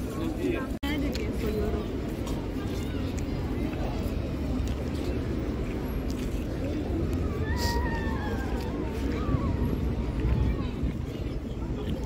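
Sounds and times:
busy street rumble: 0:00.0 - 0:12.0.

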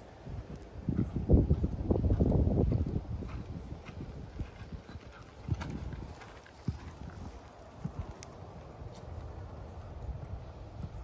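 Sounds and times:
horse hoofbeats on sand: 0:00.8 - 0:08.1.

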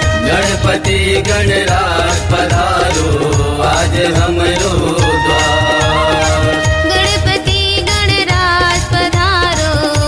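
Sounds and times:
devotional song: 0:00.0 - 0:10.0
steady drum beat: 0:00.0 - 0:10.0.

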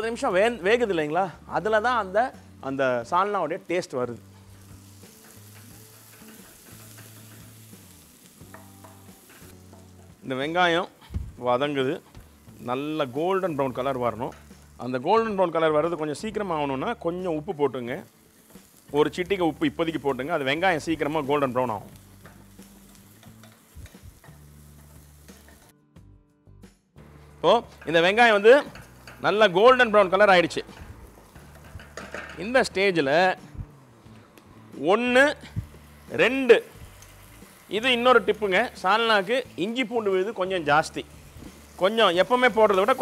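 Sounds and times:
food sizzling in hot oil: 0:00.0 - 0:25.7, 0:27.0 - 0:43.0.

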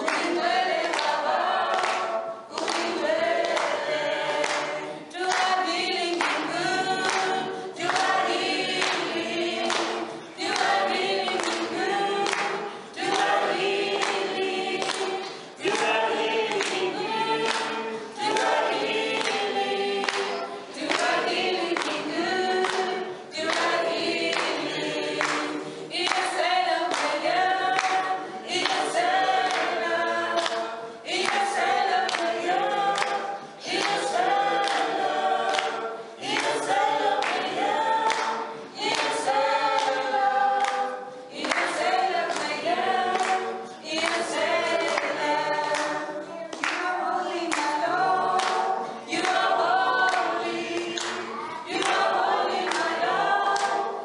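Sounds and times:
group singing in harmony: 0:00.0 - 0:54.0
hand claps: 0:00.0 - 0:54.0.

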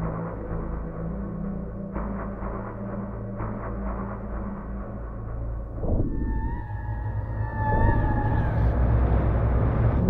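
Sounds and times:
low drone: 0:00.0 - 0:10.0
wavering sliding high tone: 0:05.9 - 0:08.9.

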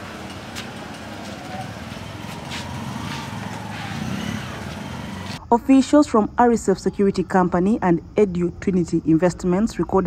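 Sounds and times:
vehicle engine noise: 0:00.0 - 0:05.5.

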